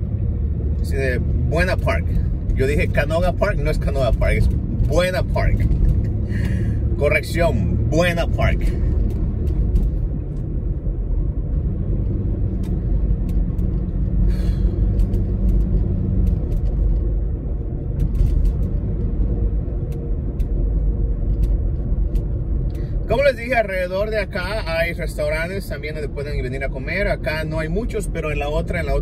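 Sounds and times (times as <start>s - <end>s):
car cabin road rumble: 0.0s - 29.0s.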